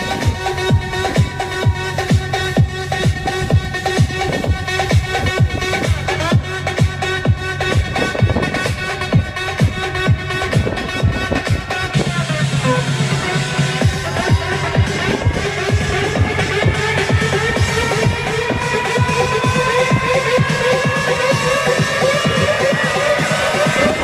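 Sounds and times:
held bass note: 0:00.0 - 0:21.9
electronic dance music: 0:00.0 - 0:24.0
kick drum: 0:13.8 - 0:21.0.

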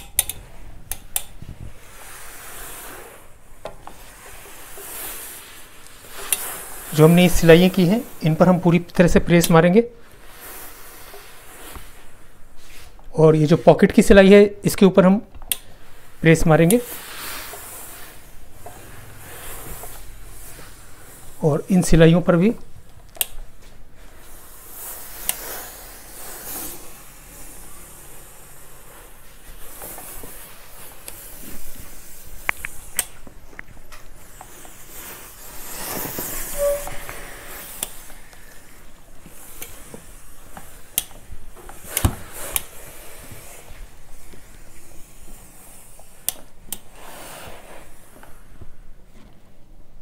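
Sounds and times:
sharp clicks: 0:00.0 - 0:01.4, 0:15.3 - 0:15.7
steam iron hissing: 0:00.0 - 0:09.2, 0:10.0 - 0:13.0, 0:15.6 - 0:22.6, 0:23.5 - 0:33.2, 0:34.0 - 0:48.6.

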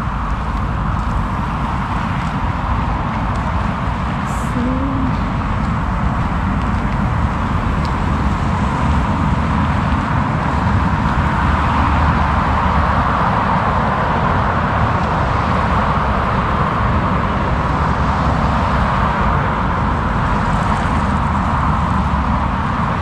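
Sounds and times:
motorway traffic rumble: 0:00.0 - 0:23.0.

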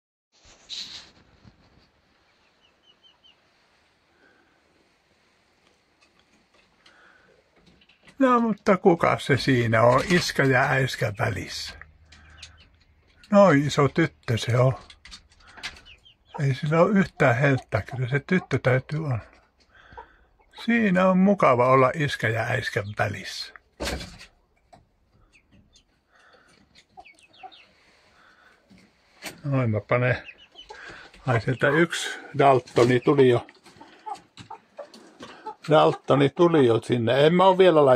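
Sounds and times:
chicken peeping: 0:00.7 - 0:04.0, 0:07.7 - 0:37.6.

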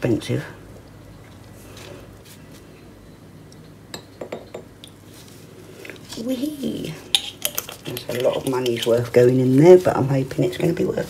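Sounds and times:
liquid dribbling: 0:07.1 - 0:09.2.

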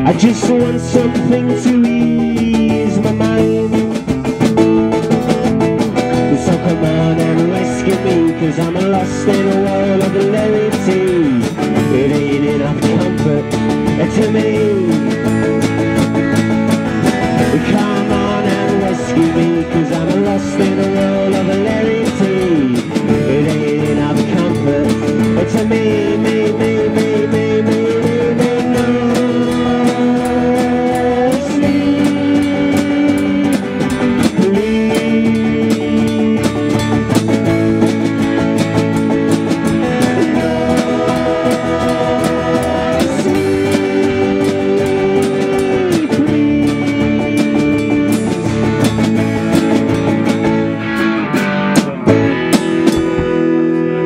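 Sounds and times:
electric stringed instrument: 0:00.0 - 0:54.0
sliding wordless melody line: 0:00.0 - 0:54.0
strummed acoustic guitar: 0:00.0 - 0:54.0.

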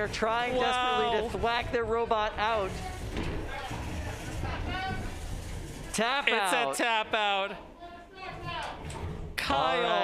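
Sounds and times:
indoor arena crowd din: 0:00.0 - 0:10.0.

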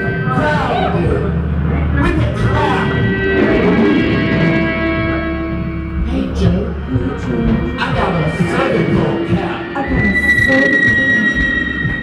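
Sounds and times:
high-pitched electronic whine: 0:00.0 - 0:12.0
low droning rumble: 0:00.0 - 0:12.0.

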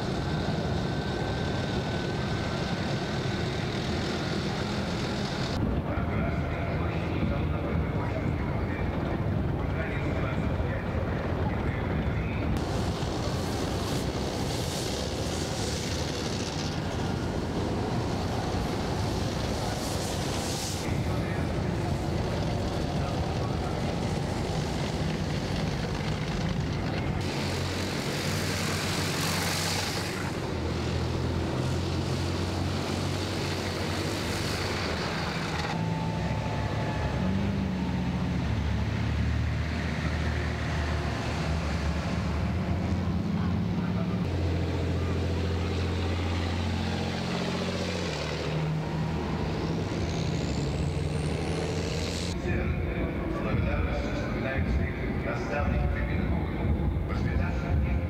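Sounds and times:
heavy diesel vehicles driving past: 0:00.0 - 0:58.0
faint high whine: 0:35.6 - 0:38.1.

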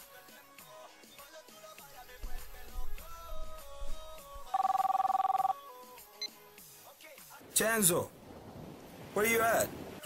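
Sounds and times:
music: 0:00.0 - 0:07.4
telephone ringing: 0:04.5 - 0:05.6.

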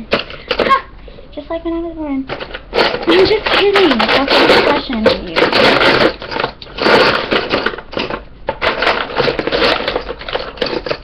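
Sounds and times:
pencils rattling in plastic caddy: 0:00.0 - 0:00.8, 0:02.3 - 0:11.0.

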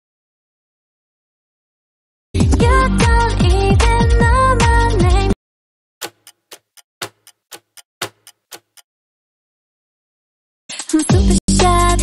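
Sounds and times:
clock ticking: 0:06.0 - 0:08.8.

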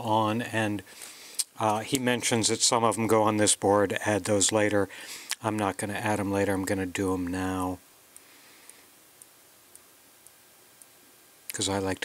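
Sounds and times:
faint regular ticking: 0:08.1 - 0:12.0.

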